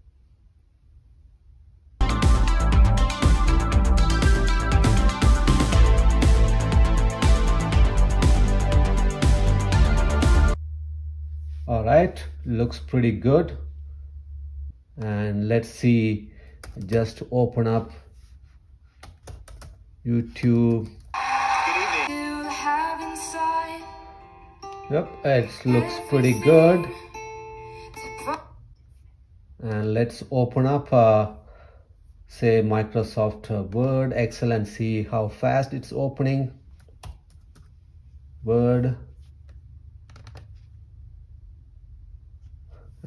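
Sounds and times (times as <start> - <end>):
music through laptop speakers: 2.0 - 10.6, 21.2 - 27.2
low steady hum: 10.4 - 18.6, 23.4 - 43.0
person singing: 21.2 - 28.4.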